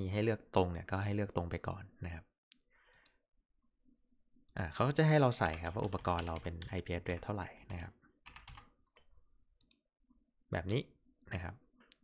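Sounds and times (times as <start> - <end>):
man speaking: 4.6 - 8.0, 10.5 - 11.6
computer mouse clicking: 8.3 - 9.8.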